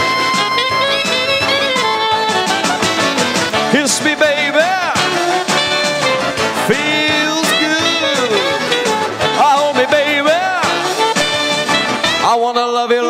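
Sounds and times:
saxophone solo: 0.0s - 12.4s
backing music with steady beat: 0.0s - 12.5s.

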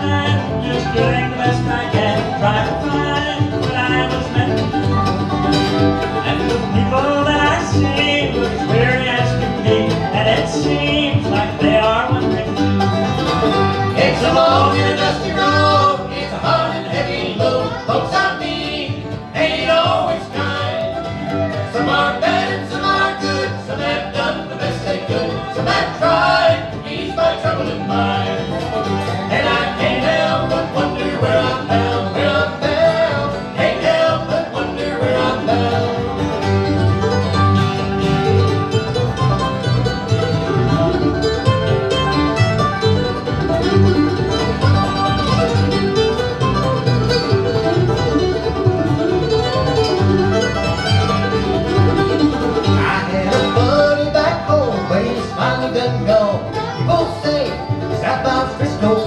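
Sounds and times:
banjo: 0.0s - 59.0s
dobro: 0.0s - 59.0s
guitar: 0.0s - 59.0s
mandolin: 0.0s - 59.0s
upright bass: 0.0s - 59.0s.

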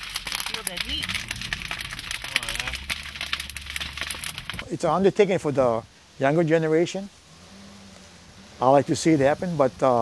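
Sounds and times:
fire crackling and popping: 0.0s - 5.8s.

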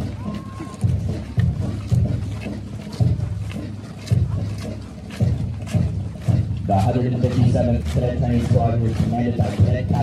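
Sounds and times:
marching footsteps on dirt road: 0.0s - 10.0s.

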